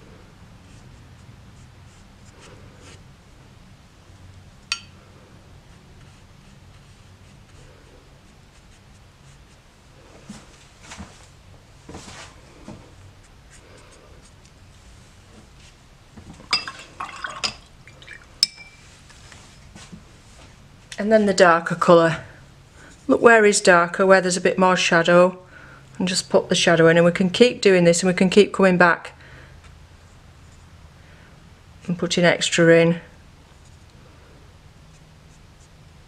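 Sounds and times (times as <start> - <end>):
low steady hum: 0.0 - 36.0
brush strokes on wet paper: 0.6 - 3.1, 5.0 - 15.9, 33.5 - 36.0
brush clinking on glass jar: 16.5 - 18.9
short ringing clink: 18.4 - 18.8.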